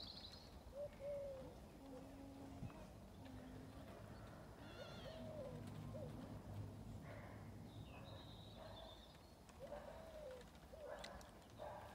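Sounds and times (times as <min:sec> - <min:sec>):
bird cooing: 0:00.7 - 0:07.4, 0:09.6 - 0:11.8.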